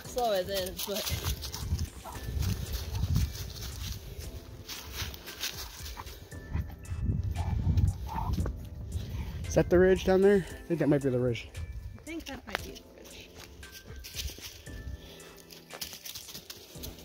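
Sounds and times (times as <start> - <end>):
dry leaves rustling: 0.0 - 6.4, 12.2 - 17.0
footsteps in leaves: 0.0 - 6.4, 12.2 - 17.0.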